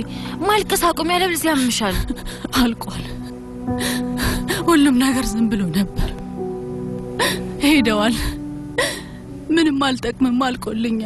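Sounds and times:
voice: 0.0s - 3.2s, 4.5s - 6.2s, 7.6s - 8.4s, 9.5s - 11.0s
background music with held notes: 0.0s - 11.0s.

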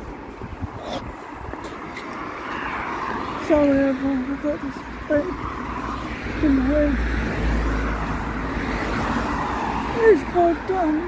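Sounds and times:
passing vehicle rumble: 0.0s - 11.0s
man's drawn-out voice: 3.4s - 5.4s, 6.3s - 7.2s, 9.9s - 11.0s.

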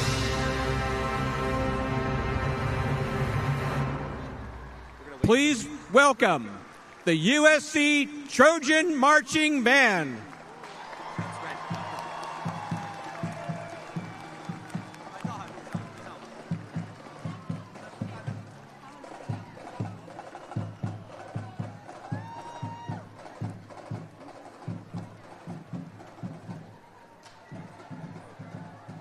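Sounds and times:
marching band playing: 0.0s - 29.0s
crowd noise: 3.1s - 29.0s
marching drums beating: 11.0s - 29.0s.

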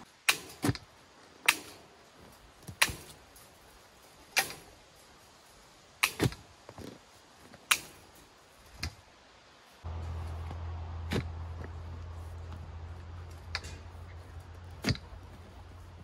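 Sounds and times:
post hole digger striking soil: 0.2s - 1.8s, 6.0s - 6.4s, 10.4s - 11.8s.

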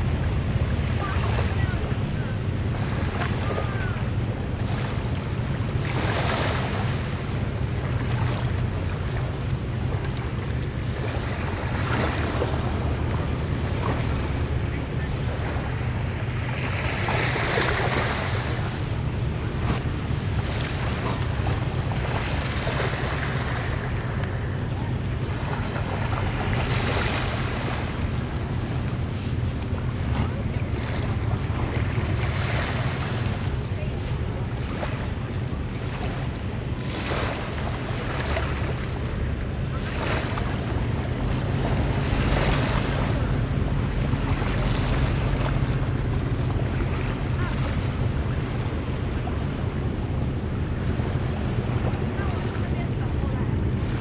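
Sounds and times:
small waves washing in shallows: 0.0s - 54.0s.

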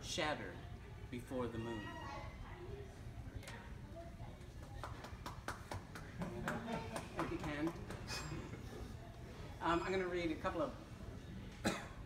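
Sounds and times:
light applause: 4.5s - 8.3s.

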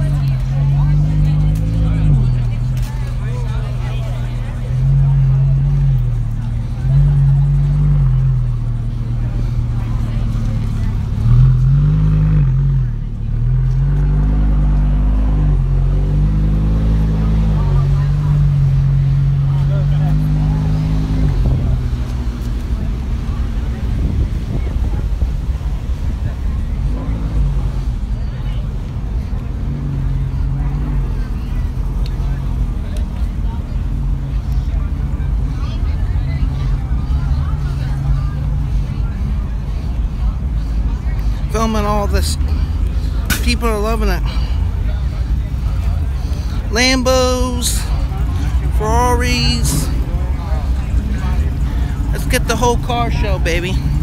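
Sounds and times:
crowd chatter: 0.0s - 54.0s
sports car engines running: 0.0s - 54.0s.

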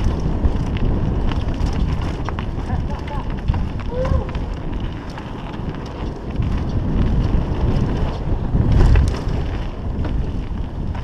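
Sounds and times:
bike clicks and rattles: 0.0s - 11.0s
wind buffeting microphone: 0.0s - 11.0s.

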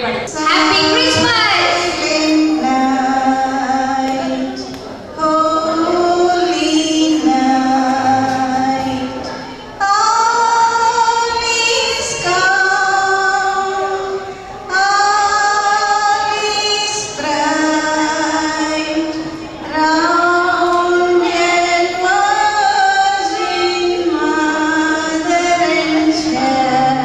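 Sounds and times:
women singing a hymn: 0.3s - 27.0s.

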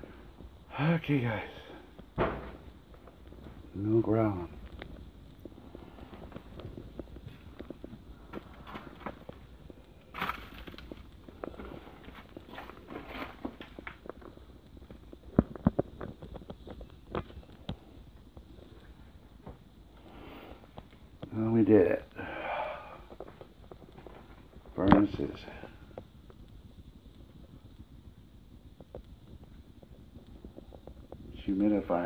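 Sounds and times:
footsteps crunching over debris: 2.4s - 20.0s.

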